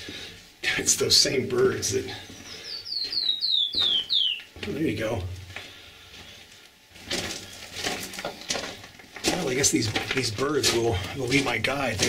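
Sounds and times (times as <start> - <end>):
footsteps crunching on gravel: 1.6 - 12.0.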